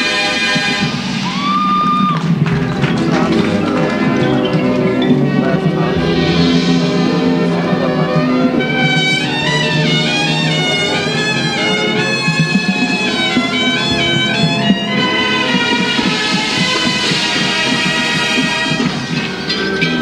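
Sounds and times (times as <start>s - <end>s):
brass ensemble playing: 0.0s - 20.0s.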